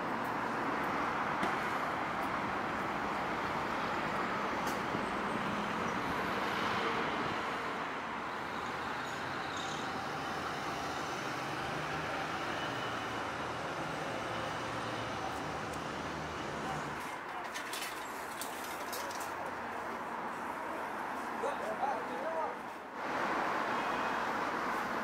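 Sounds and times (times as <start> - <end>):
road traffic hum: 0.0 - 25.0.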